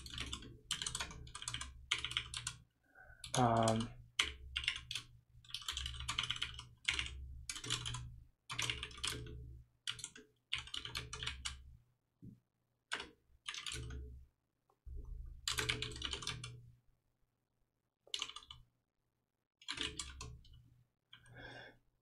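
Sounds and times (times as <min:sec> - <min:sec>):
typing on a keyboard: 0:00.0 - 0:02.6, 0:03.2 - 0:11.6, 0:12.9 - 0:14.2, 0:15.4 - 0:16.6, 0:18.1 - 0:18.7, 0:19.6 - 0:21.3.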